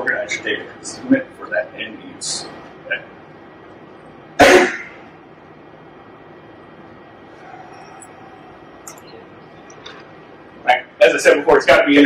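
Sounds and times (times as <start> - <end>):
person coughing: 4.4 - 5.0.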